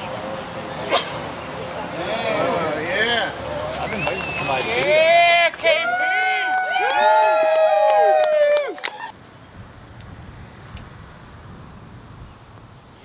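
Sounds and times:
faint outdoor background noise: 0.0s - 13.0s.

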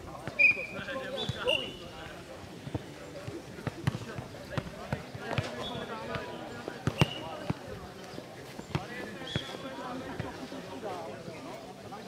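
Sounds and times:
voices of players and spectators: 0.0s - 12.0s
ball kicked and bouncing: 2.6s - 7.6s, 8.7s - 9.5s.

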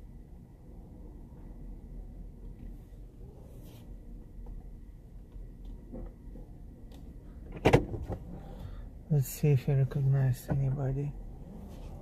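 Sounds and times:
car cabin rumble: 1.5s - 12.0s.

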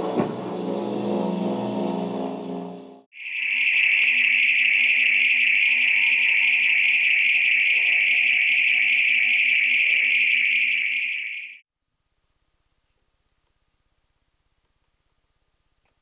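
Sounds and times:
shrill electronic drone: 0.7s - 11.6s.

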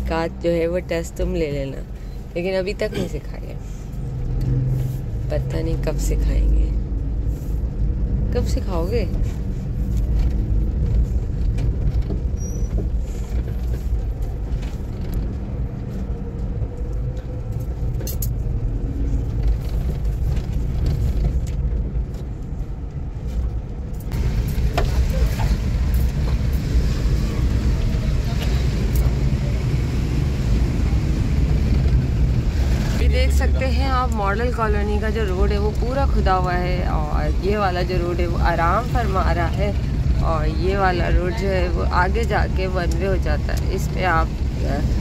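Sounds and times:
road and traffic hiss: 0.0s - 45.0s
vehicle engine and tyres rumbling: 0.0s - 45.0s.

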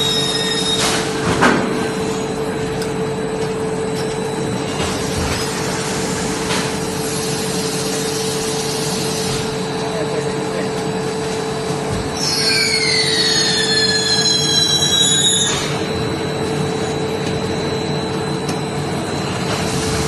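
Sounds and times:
extrusion machine humming: 0.0s - 20.0s.

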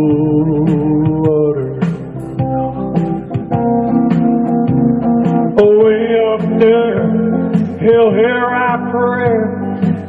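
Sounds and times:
acoustic guitar picking: 0.0s - 10.0s.

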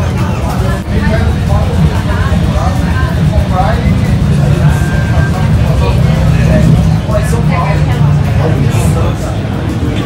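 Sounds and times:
crowd chatter: 0.0s - 10.0s
motorcycle engines rumbling: 0.0s - 10.0s.

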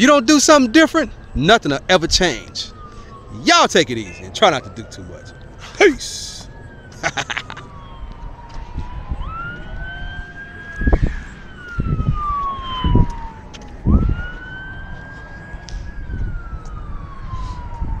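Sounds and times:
emergency siren wailing: 0.0s - 18.0s.

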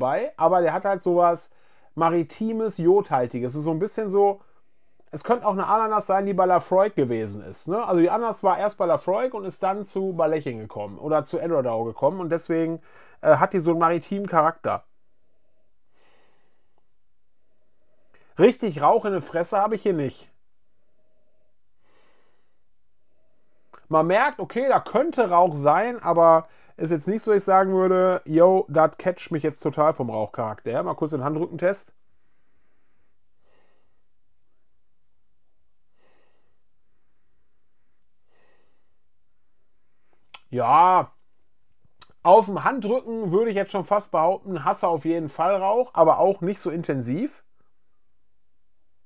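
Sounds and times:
low room hiss: 0.0s - 49.0s
breath drawn in through nose: 15.9s - 16.9s, 21.0s - 23.8s, 32.2s - 34.1s, 35.9s - 39.0s.

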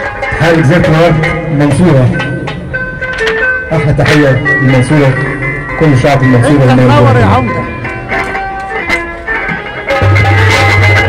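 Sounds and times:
folk band music over loudspeakers: 0.0s - 11.0s
percussion: 0.0s - 11.0s
plucked lyre melody: 0.0s - 11.0s.

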